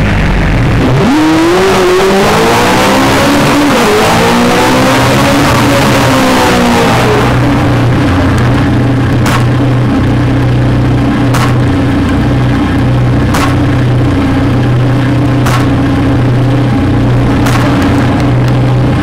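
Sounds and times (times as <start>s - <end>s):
engine-like idle hum: 0.0s - 1.2s, 7.0s - 19.0s.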